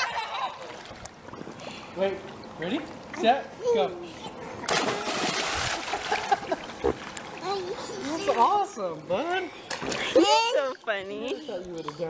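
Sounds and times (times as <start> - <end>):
big splash into pool: 4.7 - 7.1.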